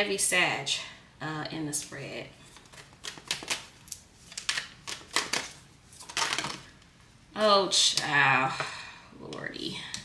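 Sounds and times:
cards clicking and snapping: 2.6 - 6.7.

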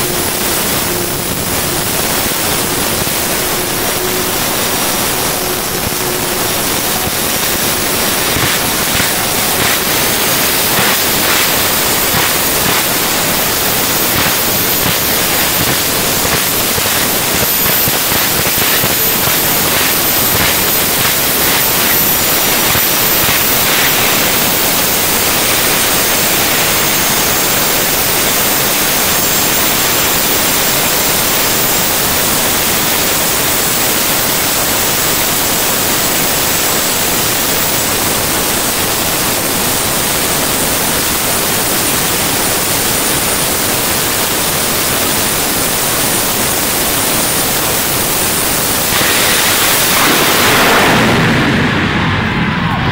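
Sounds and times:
high turbine whine: 0.0 - 52.9
jet turbine engines rushing: 0.0 - 52.9.

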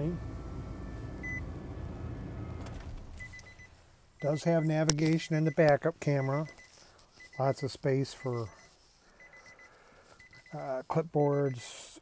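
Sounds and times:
van cab rumble: 0.0 - 4.0.

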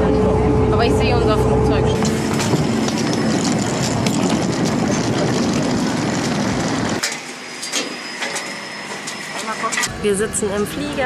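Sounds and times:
airport apron roar: 0.0 - 11.0.

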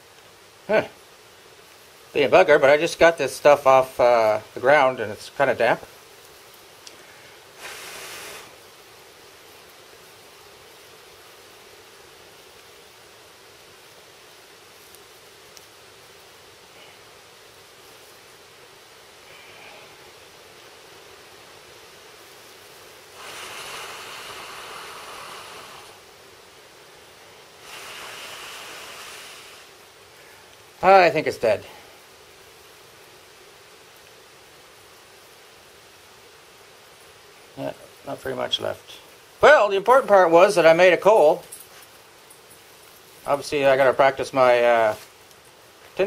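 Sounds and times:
breath blowing into tinder: 7.0 - 8.7, 23.1 - 26.1, 27.4 - 30.5.

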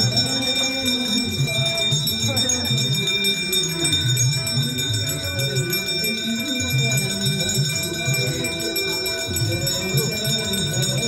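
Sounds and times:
brass hand bells ringing: 0.0 - 11.0
devotional music: 0.0 - 11.0.

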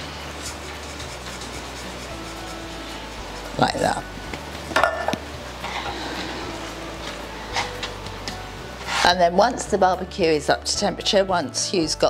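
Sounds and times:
hands rubbing seasoning into meat: 0.2 - 4.0.

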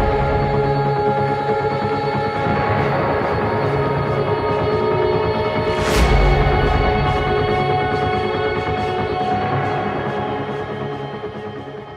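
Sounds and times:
music with long held notes: 0.0 - 11.9.

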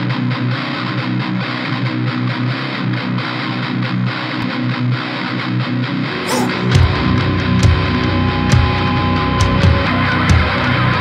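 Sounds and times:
distorted electric guitar riff: 0.0 - 11.0.

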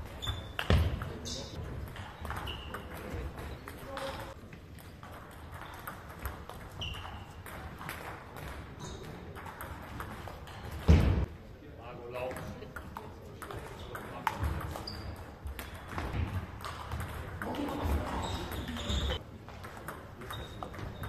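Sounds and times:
shoes squeaking on floor: 0.0 - 4.4, 6.6 - 7.6, 8.8 - 9.2, 14.6 - 16.2, 17.6 - 19.2, 20.2 - 21.0.

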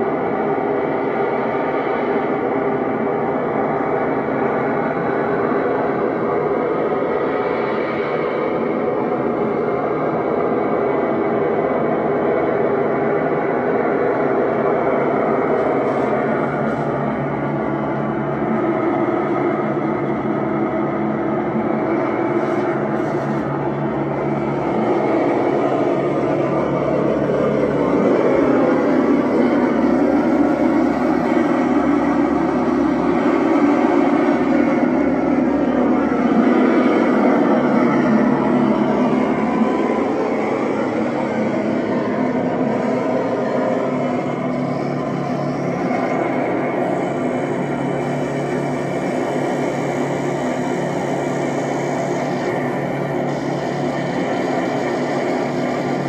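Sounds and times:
electronic noise drone: 0.0 - 56.0.

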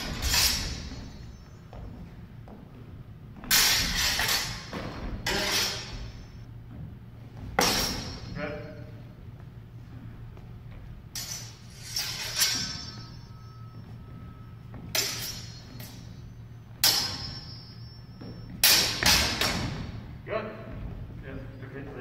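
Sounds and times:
sword blades clashing: 0.0 - 1.4, 3.5 - 6.3, 7.6 - 8.8, 11.1 - 13.4, 14.9 - 16.2, 16.8 - 18.0, 18.6 - 20.0
steady low hum: 0.0 - 22.0.

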